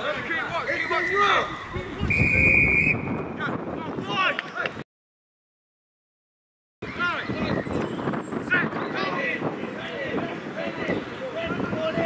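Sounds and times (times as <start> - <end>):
players shouting: 0.0 - 2.6, 6.8 - 12.0
referee's whistle blasts: 2.0 - 3.3.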